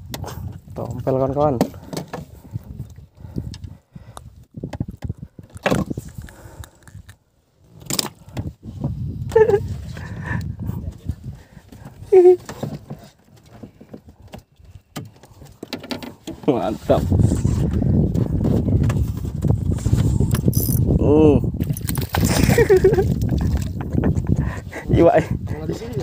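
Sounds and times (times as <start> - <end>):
wind gusts on microphone: 0.0 - 1.6, 2.3 - 7.1, 8.2 - 12.4, 16.6 - 26.0.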